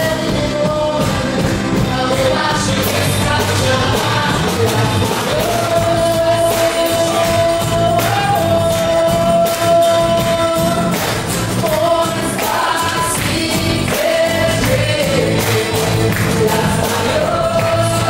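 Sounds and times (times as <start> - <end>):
hand drum beat: 0.0 - 18.0
man singing: 0.0 - 18.0
woman singing: 0.0 - 18.0.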